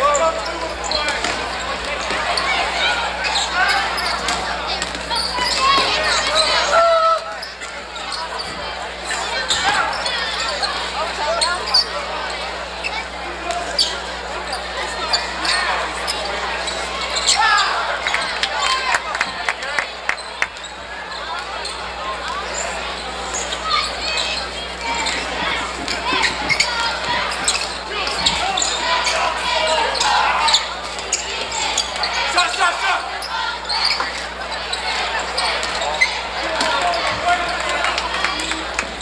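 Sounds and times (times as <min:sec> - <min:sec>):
crowd noise: 0:00.0 - 0:39.0
shouting voices: 0:00.0 - 0:39.0
shoe squeaks and impacts: 0:05.0 - 0:06.0, 0:23.3 - 0:32.2, 0:33.2 - 0:37.5.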